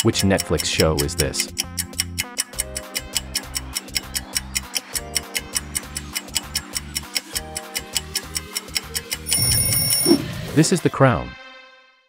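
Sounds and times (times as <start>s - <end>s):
clock ticking: 0.0s - 10.2s
looping background beat: 0.0s - 10.7s
high ringing tone: 9.3s - 10.2s.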